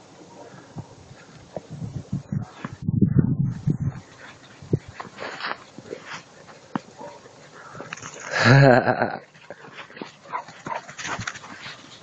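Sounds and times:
dogs crunching through snow: 4.0 - 8.4, 9.3 - 12.0.

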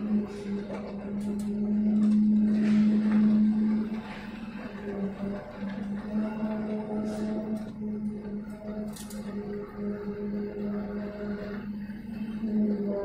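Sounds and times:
concrete pump droning hum: 0.0 - 13.0.

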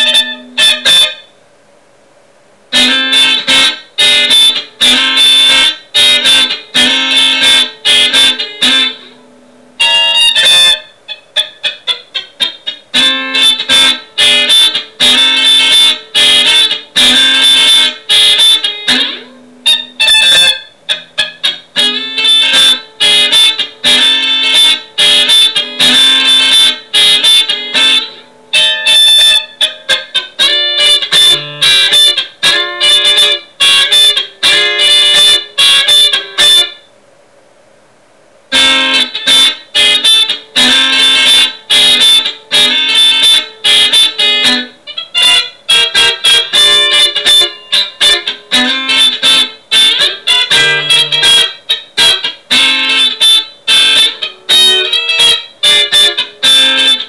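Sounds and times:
electric guitar funk groove: 2.8 - 9.1, 11.4 - 36.6, 38.5 - 57.0.

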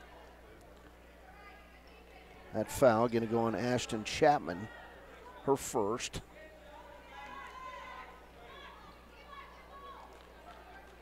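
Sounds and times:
faint voices calling and chatting: 0.0 - 11.0.

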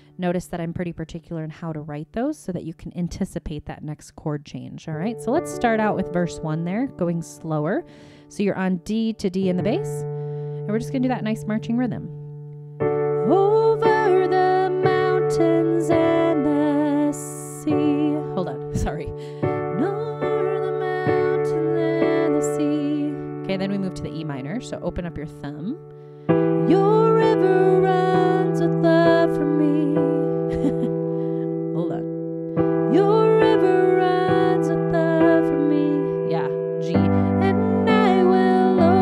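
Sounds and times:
piano chords: 5.0 - 39.0
person speaking: 10.7 - 12.2, 31.7 - 32.1, 36.2 - 37.7
woman singing: 13.2 - 24.6, 26.5 - 32.1, 32.9 - 39.0.

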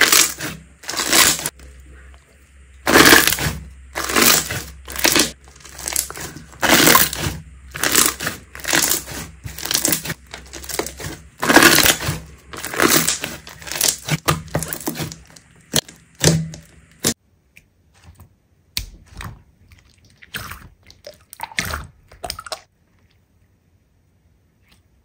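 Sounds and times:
slime squished by hand: 0.0 - 1.6, 2.8 - 17.2, 18.7 - 22.7.

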